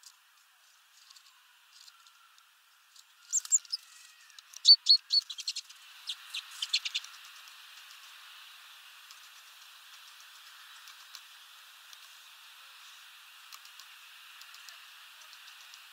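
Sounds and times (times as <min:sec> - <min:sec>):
finches chirping: 0:03.2 - 0:07.1.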